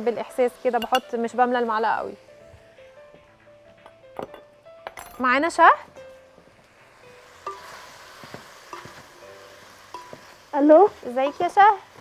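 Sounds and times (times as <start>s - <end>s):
meat sizzling in a pot: 0.0s - 12.0s
wooden spoon knocking on pot: 7.5s - 9.1s.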